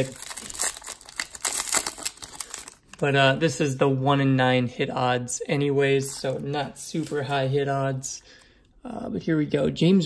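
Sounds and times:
foil wrapper crinkling: 0:00.0 - 0:03.0.

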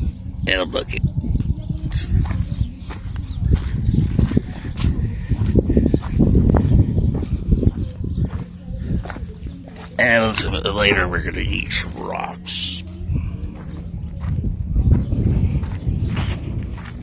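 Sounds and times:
phone microphone rumbling and scuffing: 0:01.8 - 0:12.1, 0:13.0 - 0:17.0
footsteps on dirt: 0:02.0 - 0:17.0.

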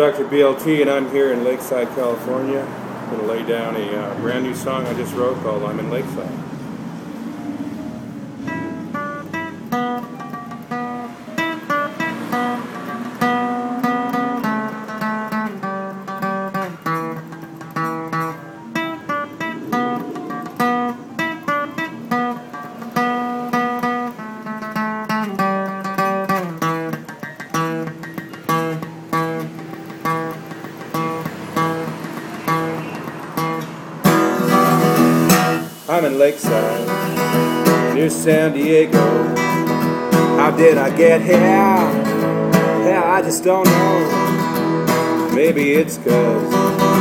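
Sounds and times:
acoustic guitar playing: 0:00.0 - 0:47.0.

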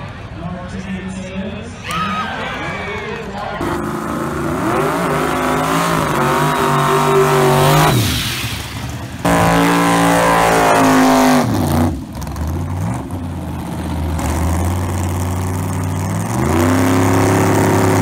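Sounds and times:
racing car engine revving: 0:03.6 - 0:18.0.

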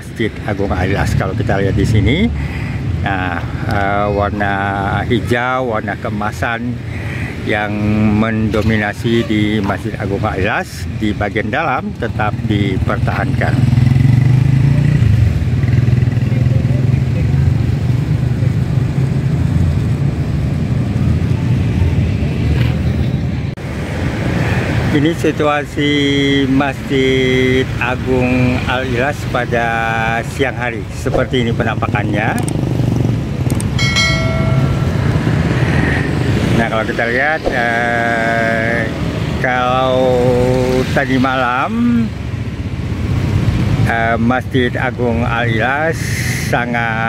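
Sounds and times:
motorcycle engines running: 0:00.0 - 0:45.9
street traffic rumble: 0:00.0 - 0:47.0
bell-like notification chime: 0:33.8 - 0:35.6.

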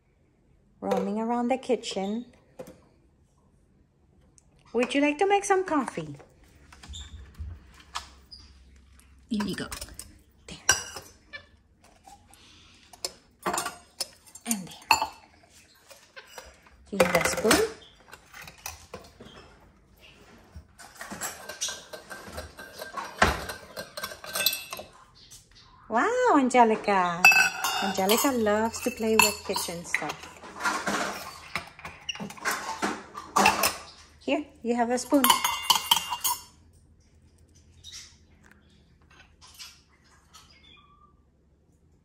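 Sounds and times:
metal cups clinking on countertop: 0:09.4 - 0:11.1, 0:13.0 - 0:15.2, 0:21.0 - 0:24.9, 0:27.2 - 0:32.6, 0:35.0 - 0:36.6
metal cups tapping on stone: 0:35.2 - 0:36.4.

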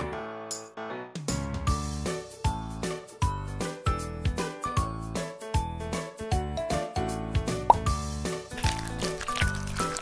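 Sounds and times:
bouncy children's music: 0:01.4 - 0:10.0.

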